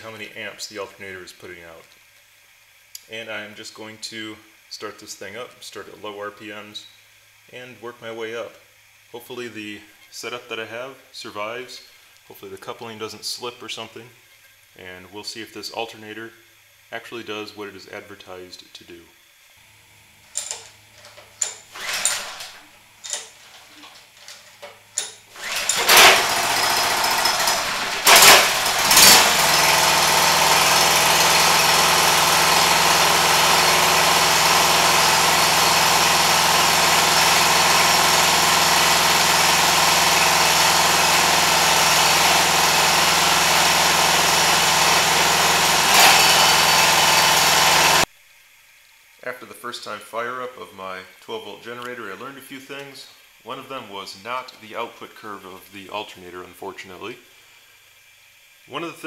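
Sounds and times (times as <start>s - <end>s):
small gasoline engine running: 20.4s - 48.1s.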